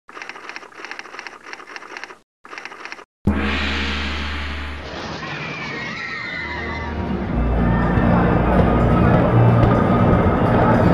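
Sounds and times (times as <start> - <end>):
loud hit: 3.3 - 6.0.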